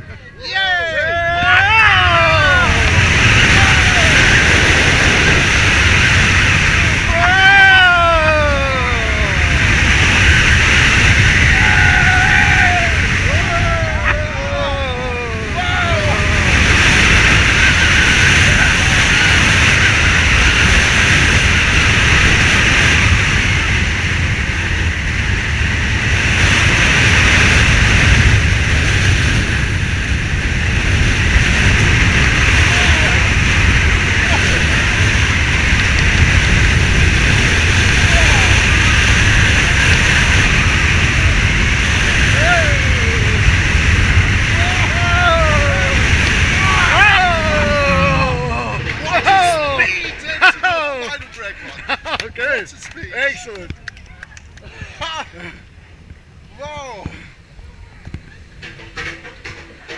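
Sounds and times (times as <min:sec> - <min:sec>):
riders whooping and shouting: 0:00.0 - 0:23.8, 0:30.5 - 0:52.5
roller coaster train roaring: 0:00.0 - 0:59.9
wind rushing over microphone: 0:00.0 - 0:59.9.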